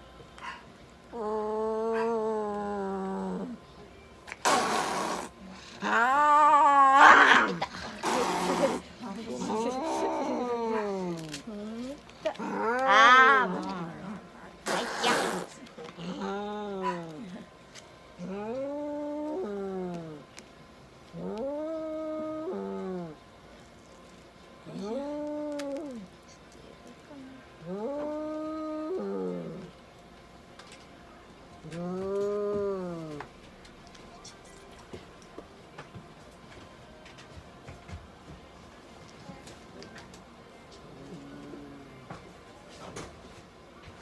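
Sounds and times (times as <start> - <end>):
cat yowling: 12.5 - 13.8.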